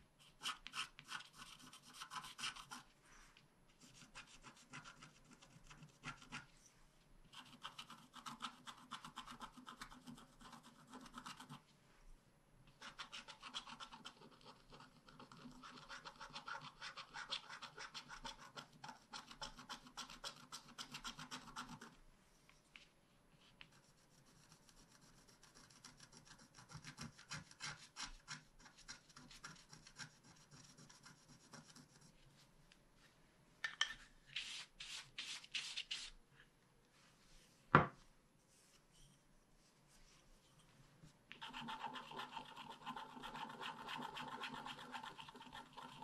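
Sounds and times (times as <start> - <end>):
stylus scratching coated sheet: 0.2 - 2.9, 23.4 - 32.5, 34.3 - 36.2, 41.3 - 46.0.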